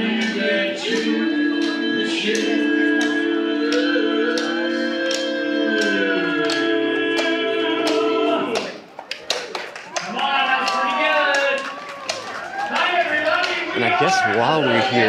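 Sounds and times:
male quartet singing a cappella: 0:00.0 - 0:08.8.

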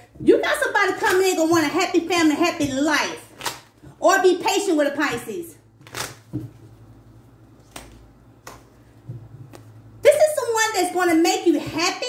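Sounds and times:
cards clicking: 0:05.8 - 0:06.3, 0:07.6 - 0:08.7.

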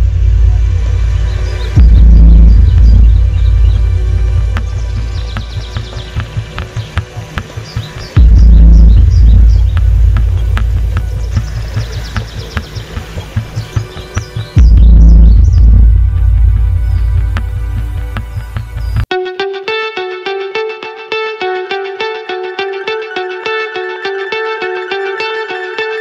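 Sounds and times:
deep low booms: 0:00.0 - 0:07.0, 0:08.2 - 0:12.8, 0:14.6 - 0:19.1
birds chirping: 0:00.0 - 0:19.1
fast pulsing beat: 0:00.0 - 0:19.1.

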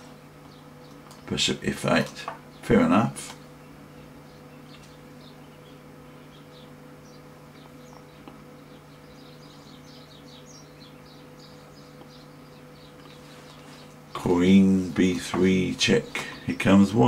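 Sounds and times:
birds chirping: 0:00.0 - 0:17.0
low electrical hum: 0:00.0 - 0:17.0.

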